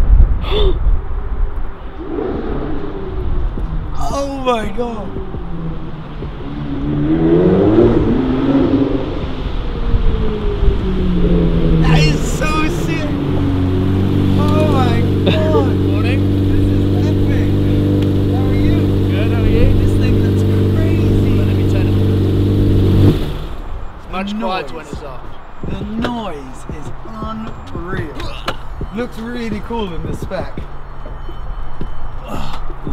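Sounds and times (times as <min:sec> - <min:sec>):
car engine revving and idling: 0:02.0 - 0:23.9.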